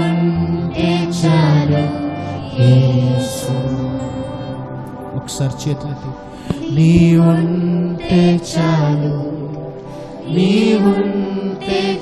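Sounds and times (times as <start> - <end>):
group of singers: 0.0 - 12.0
keyboards: 0.0 - 12.0
man singing long notes: 5.2 - 9.7.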